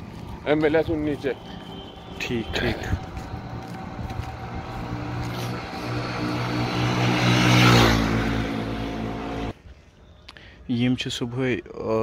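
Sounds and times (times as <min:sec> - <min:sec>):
vehicle engine passing by: 0:00.4 - 0:09.6.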